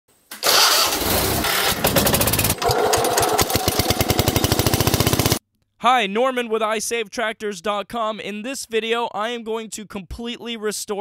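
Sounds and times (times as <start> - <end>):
tractor engine starting and running: 0.3 - 5.4.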